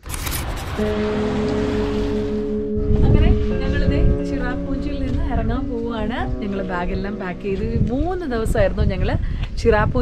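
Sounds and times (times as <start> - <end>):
music of long held chords: 0.8 - 9.2.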